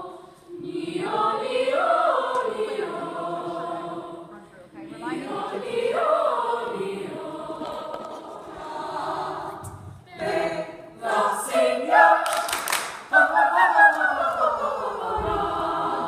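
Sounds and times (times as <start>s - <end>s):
young people singing in chorus: 0.0s - 16.0s.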